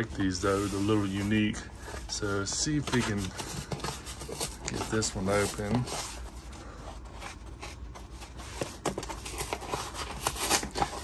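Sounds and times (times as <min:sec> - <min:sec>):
cardboard scratchy rubbing: 0:00.0 - 0:11.0.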